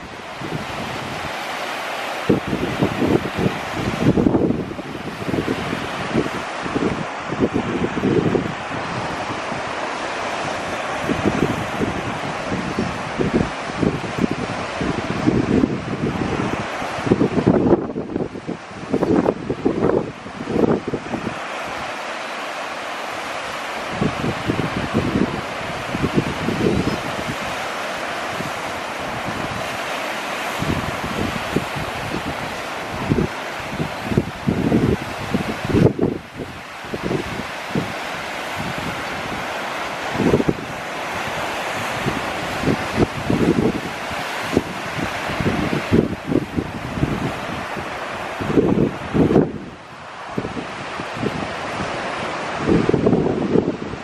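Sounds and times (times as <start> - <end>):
ocean surf on beach: 0.0 - 54.0
wind buffeting microphone: 0.0 - 54.0.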